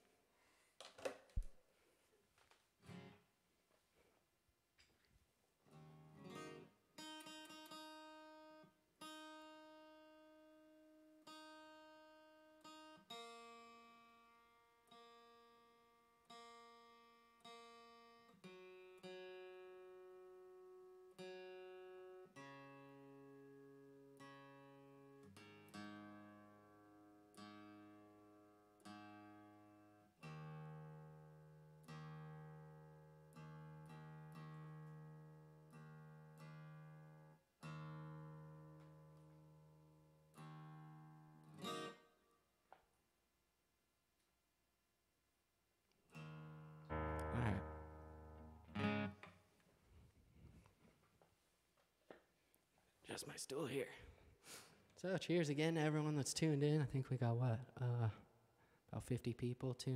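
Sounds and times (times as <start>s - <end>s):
acoustic guitar strings plucked: 46.2s - 49.4s.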